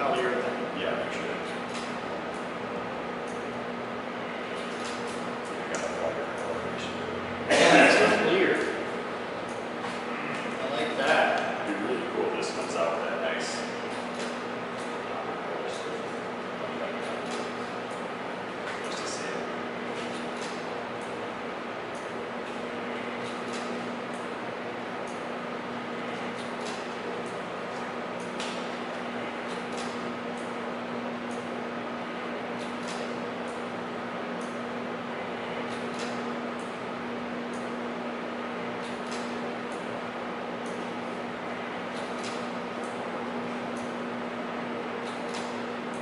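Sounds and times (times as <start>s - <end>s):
steady low hum: 0.0s - 46.0s.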